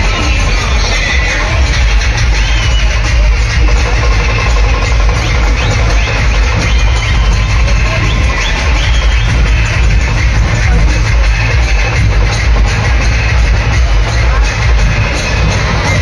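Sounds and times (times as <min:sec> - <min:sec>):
large barrel drums beating: 0:00.0 - 0:16.0.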